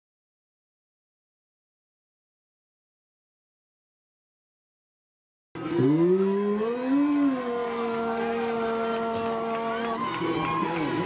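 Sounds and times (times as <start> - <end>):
crowd noise: 5.6 - 11.0
voices calling and cheering: 5.6 - 11.0.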